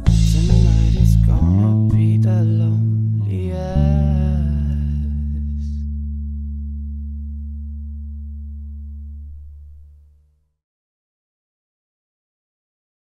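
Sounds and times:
backing track music: 0.0s - 3.2s
low electric bass note: 0.0s - 10.3s.

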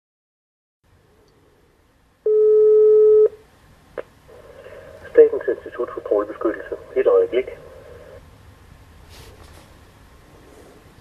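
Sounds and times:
telephone ringback tone: 2.3s - 3.4s.

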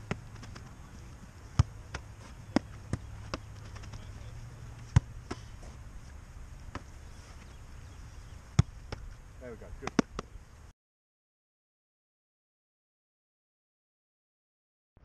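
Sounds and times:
low steady hum: 0.0s - 10.7s
football thudding off foot and gloves: 1.5s - 4.1s, 4.8s - 5.8s.

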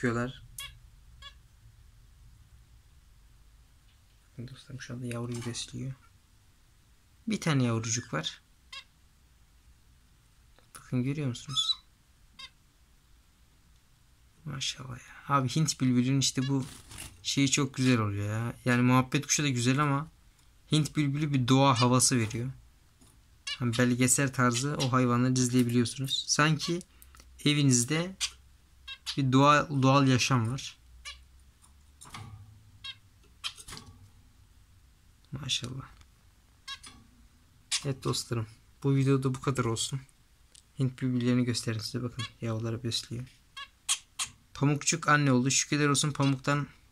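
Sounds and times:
bird chirping: 0.0s - 1.5s, 7.8s - 9.0s, 10.7s - 12.6s, 20.7s - 22.4s, 23.4s - 34.0s, 36.6s - 38.6s, 42.0s - 42.6s, 43.5s - 44.6s, 46.0s - 46.6s
sparrow chirp: 11.4s - 12.6s, 32.8s - 33.7s, 36.6s - 37.0s, 43.6s - 44.4s.

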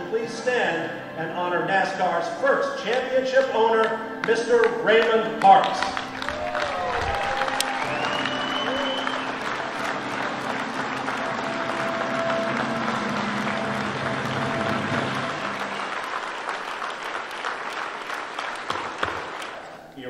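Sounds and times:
music playing: 0.0s - 18.7s
audience applauding: 4.6s - 19.8s.

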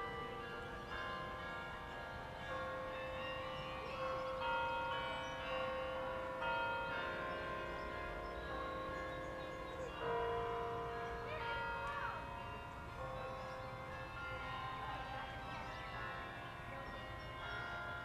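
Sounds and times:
bell-like chiming melody: 0.0s - 18.0s
faint outdoor background noise: 0.0s - 18.0s.

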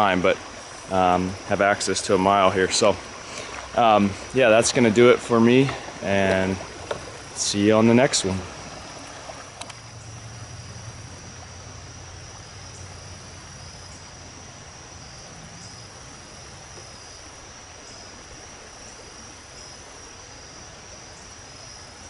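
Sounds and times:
crickets trilling: 0.0s - 22.0s
faint even hiss: 0.0s - 22.0s.

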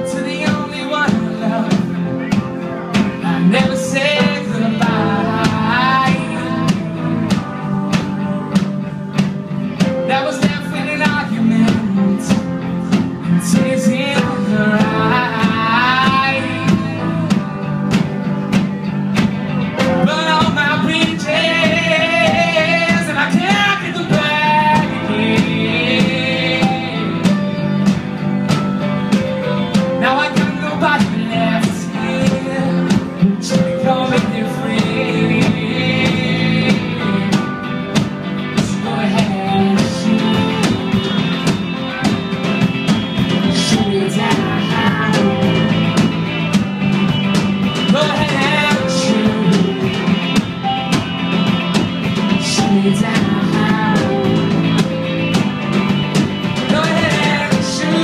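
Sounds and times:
drum kit beat: 0.0s - 58.0s
rock band playing: 0.0s - 58.0s.

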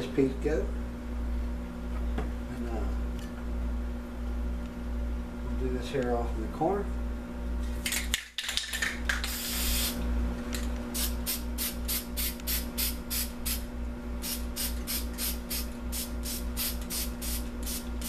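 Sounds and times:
spray paint can hissing: 9.2s - 10.0s, 11.0s - 13.6s, 14.2s - 17.9s.

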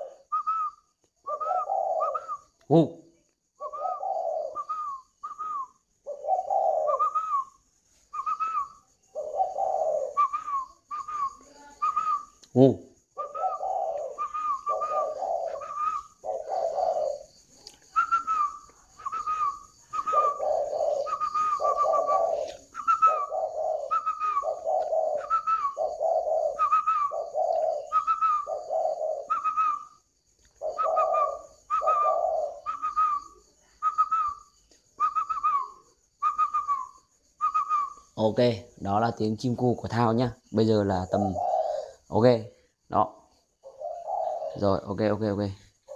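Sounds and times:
doves cooing: 0.0s - 0.7s, 1.3s - 2.6s, 3.6s - 7.6s, 8.2s - 12.3s, 13.1s - 38.1s, 41.0s - 42.4s, 43.6s - 45.9s.

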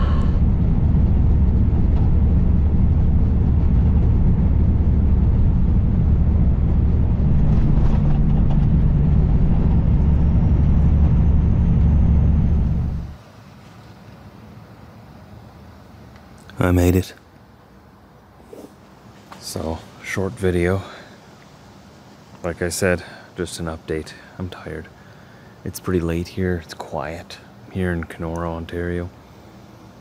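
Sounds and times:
diesel truck engine: 0.0s - 13.2s
road rumble: 0.0s - 13.3s.

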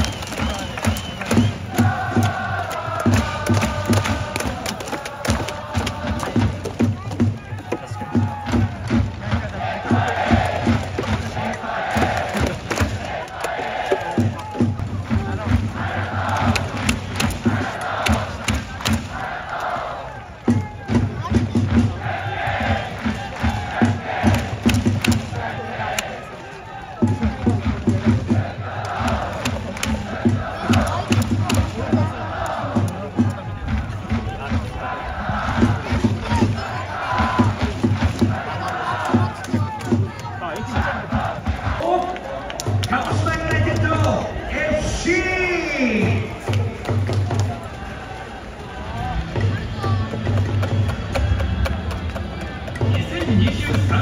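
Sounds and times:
crowd chanting: 0.0s - 54.0s
drums beating: 0.0s - 54.0s.

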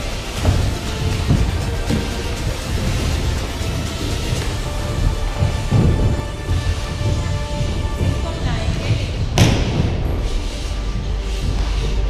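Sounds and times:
background music: 0.0s - 12.0s
sharp thump: 9.3s - 10.2s.

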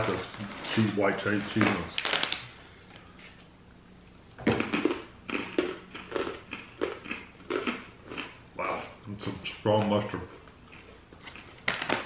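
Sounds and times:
crunching pretzel being chewed: 4.5s - 8.9s, 9.7s - 12.0s.

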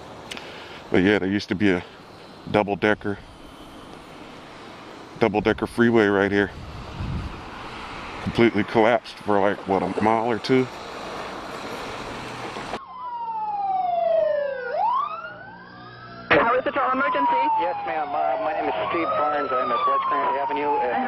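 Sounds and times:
outdoor noise: 0.0s - 21.0s
voices talking: 0.9s - 3.4s, 5.2s - 6.6s, 8.2s - 10.8s, 16.3s - 21.0s
siren wailing: 12.8s - 21.0s.

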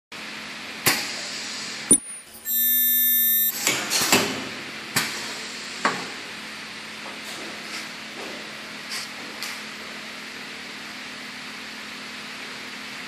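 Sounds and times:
faint steady hum: 1.9s - 3.6s
high welding whine: 1.9s - 3.7s.

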